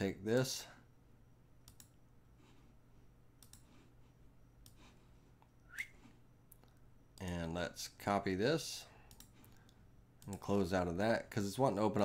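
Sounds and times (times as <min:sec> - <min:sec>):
low steady hum: 0:00.0 - 0:12.0
computer mouse clicks: 0:01.6 - 0:02.0, 0:03.4 - 0:03.8, 0:09.1 - 0:10.5.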